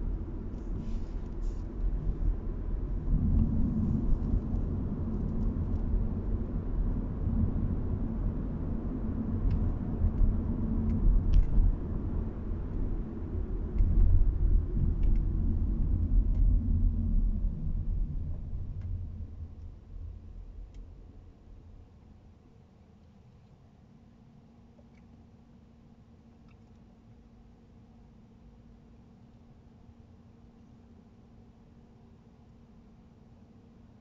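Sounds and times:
road and engine rumble in car: 0.0s - 25.4s.

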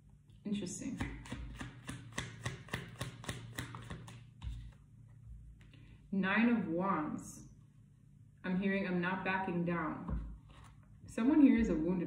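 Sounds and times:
cards being shuffled: 1.0s - 4.8s.

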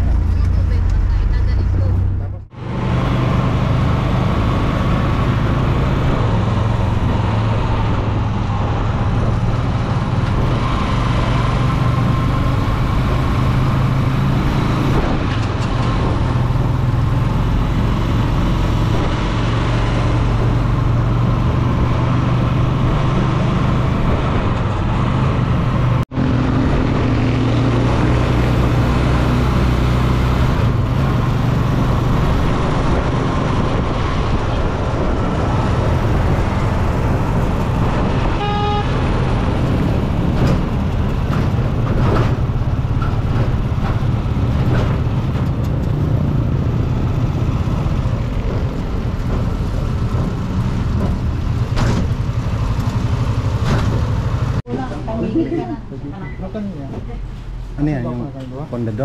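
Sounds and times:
road and wind noise: 0.0s - 59.0s.

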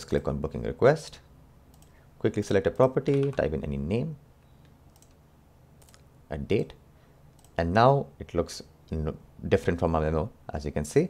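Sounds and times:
faint computer mouse clicks: 1.7s - 2.0s, 4.4s - 5.2s, 5.8s - 6.1s, 7.3s - 7.6s.

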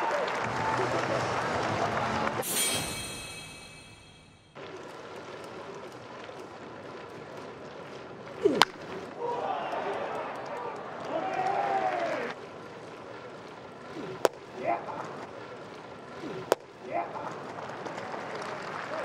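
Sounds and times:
ballpark background noise: 0.0s - 2.5s, 4.6s - 19.0s
crowd noise: 0.0s - 4.4s, 5.6s - 19.0s
voices: 13.8s - 15.5s, 16.1s - 19.0s.

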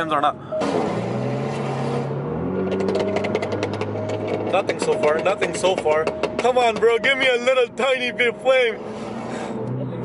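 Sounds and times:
car engine droning: 0.0s - 10.0s
exhaust pops crackling: 2.5s - 8.6s.

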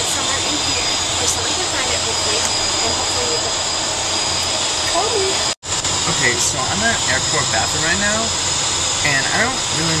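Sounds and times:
jetliner cabin engine roar: 0.0s - 10.0s
faint voice: 6.1s - 8.3s, 9.0s - 10.0s.

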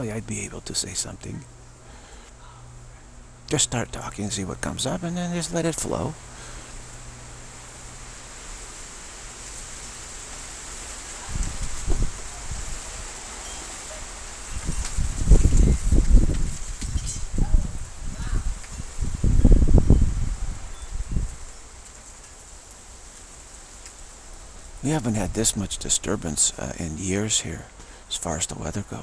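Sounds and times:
storm wind gusts on microphone: 11.1s - 13.2s, 14.4s - 21.5s.

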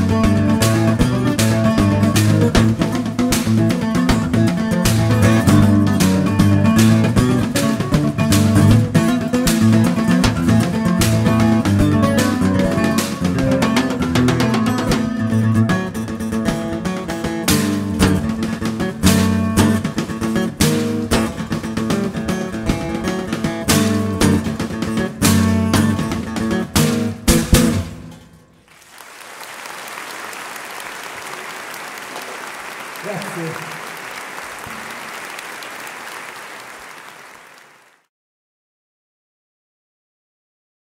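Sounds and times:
acoustic guitar tune: 0.0s - 28.7s
audience applause: 28.6s - 38.1s.

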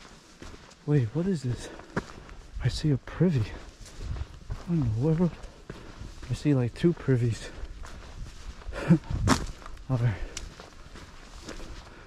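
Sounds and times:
footsteps on dry leaves: 0.0s - 12.0s.

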